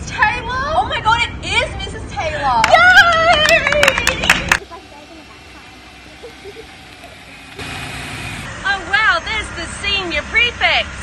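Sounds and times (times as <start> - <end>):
car engine running: 2.7 - 9.1.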